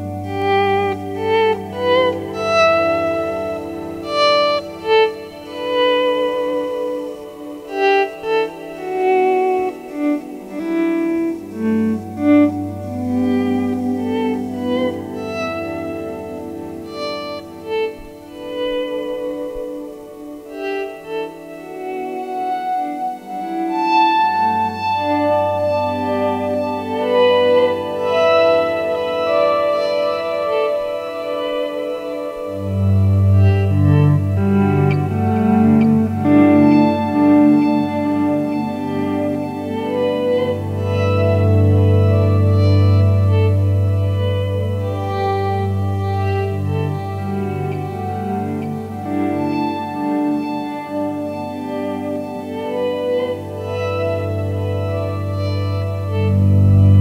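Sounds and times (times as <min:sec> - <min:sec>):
electric guitar notes with echo: 0:00.0 - 0:57.0
low held guitar note: 0:54.7 - 0:57.0.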